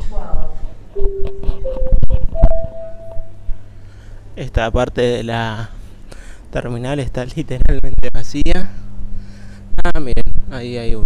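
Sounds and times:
rising three-note chime: 1.0 - 3.5.

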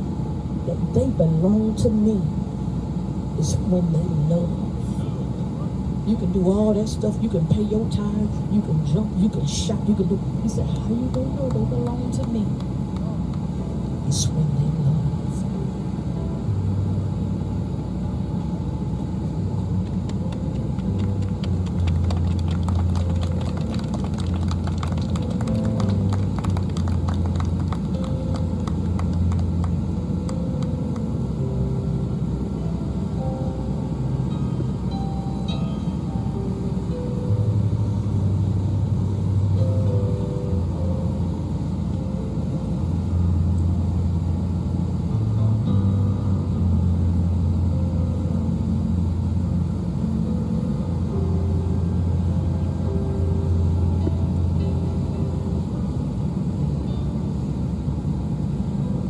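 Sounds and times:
soft organ-style keyboard chords: 3.2 - 59.0.

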